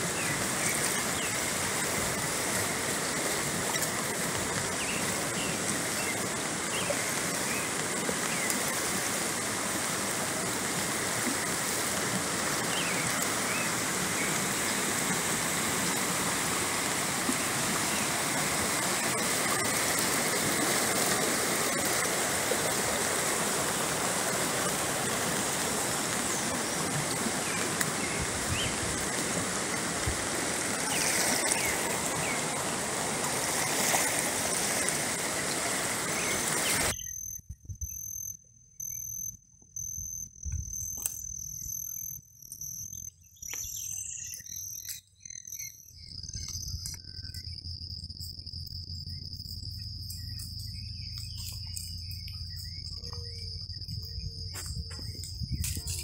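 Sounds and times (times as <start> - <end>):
river rushing: 0.0 - 36.9
insects trilling: 0.0 - 56.0.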